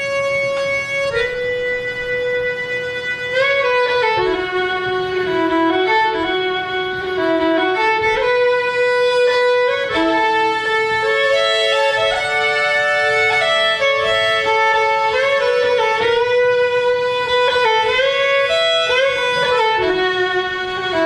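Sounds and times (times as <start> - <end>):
fiddle playing slow waltz: 0.0 - 21.0.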